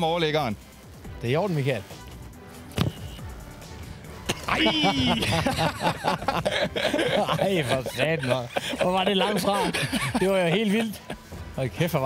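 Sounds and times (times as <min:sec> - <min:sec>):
faint background music: 0:00.0 - 0:12.0
man's loud exclamation: 0:04.4 - 0:05.6.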